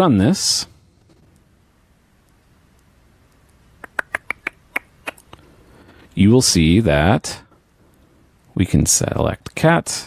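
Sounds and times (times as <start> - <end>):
sharp computer clicks: 3.4 - 5.4.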